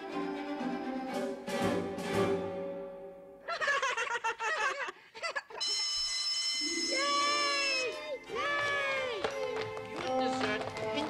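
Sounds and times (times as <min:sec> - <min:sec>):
children laughing: 0:03.4 - 0:05.7
cartoon music: 0:06.6 - 0:09.6
children cheering: 0:06.6 - 0:09.8.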